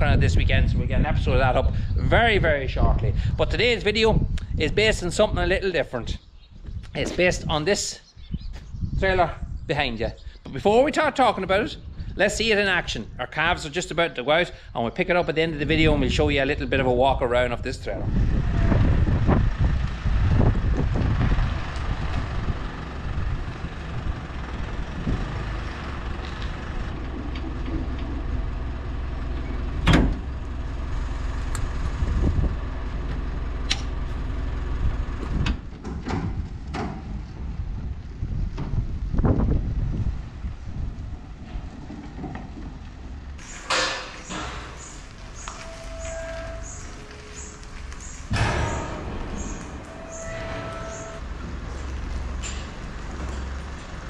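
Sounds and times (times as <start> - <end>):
truck engine rumbling: 0.0 - 6.2, 9.1 - 54.0
sharp knocks: 48.3 - 51.2.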